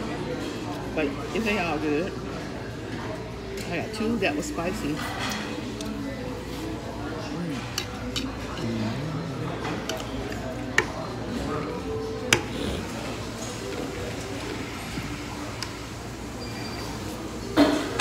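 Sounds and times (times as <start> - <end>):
restaurant chatter: 0.0 - 18.0.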